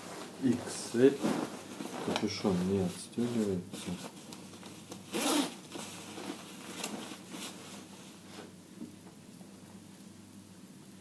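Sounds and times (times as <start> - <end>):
fabric rustling: 0.0 - 8.6
jacket zipper being pulled: 5.1 - 5.6.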